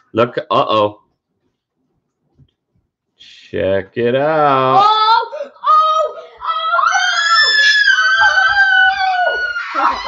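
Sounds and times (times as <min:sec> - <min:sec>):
child screaming excitedly: 0:05.1 - 0:10.0.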